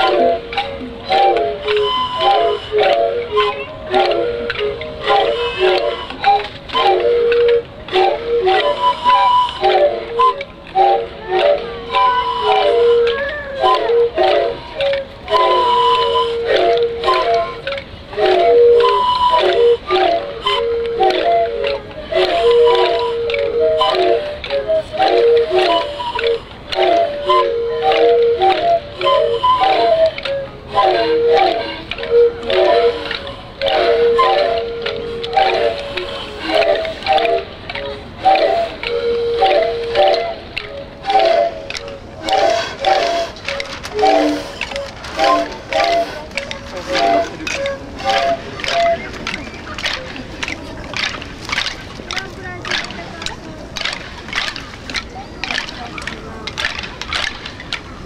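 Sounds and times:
bamboo whistle flutes ensemble: 0.0s - 58.0s.

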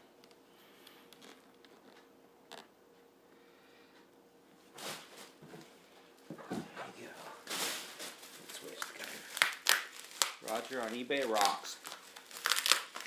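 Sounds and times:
plastic packing rustling: 6.9s - 13.0s.

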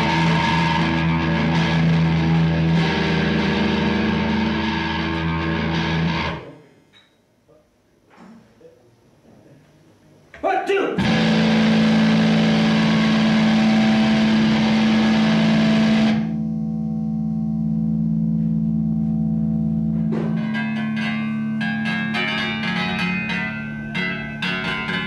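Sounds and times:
distorted electric guitar: 0.0s - 6.6s, 11.0s - 25.0s.

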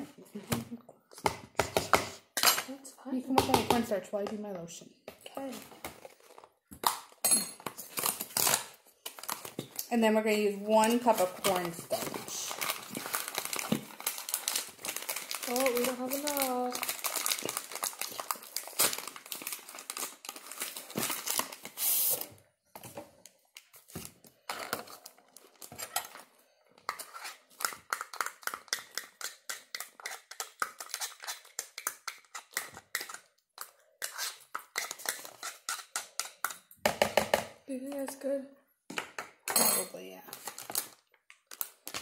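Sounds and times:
packaging rustle: 7.8s - 9.8s, 10.8s - 22.3s
spoon scraping plastic cup: 26.9s - 36.5s.

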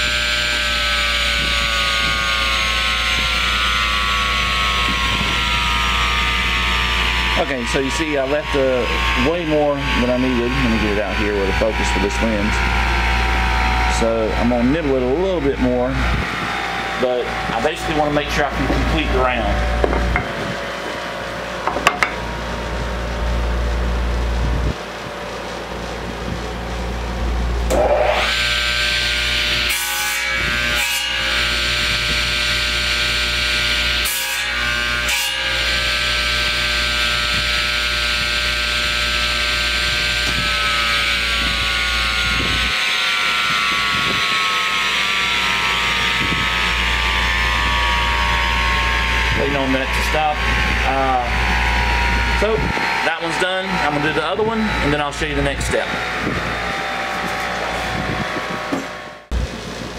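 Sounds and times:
table saw whining through wood: 0.0s - 59.9s
knocks: 19.8s - 20.4s, 21.6s - 22.2s.

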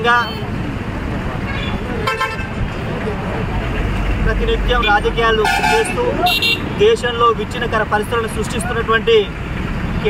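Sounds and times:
deep vehicle rumble: 0.0s - 10.0s
street traffic noise: 0.0s - 10.0s
vehicle horn toot: 5.4s - 6.7s.

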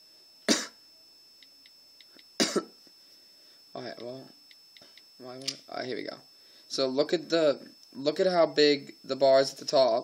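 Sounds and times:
person coughing: 0.5s - 0.8s, 2.4s - 2.8s.

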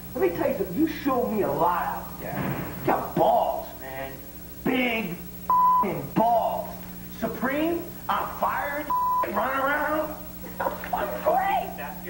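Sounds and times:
censor bleep: 5.5s - 6.0s, 8.9s - 9.4s.

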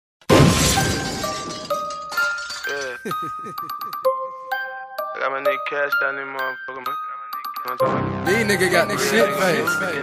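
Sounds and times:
shattering crash: 0.3s - 3.2s.

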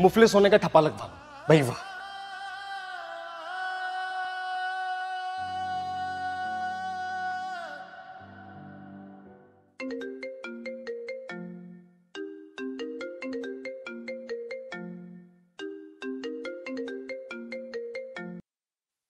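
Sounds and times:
mobile phone ringtone: 9.8s - 18.4s.

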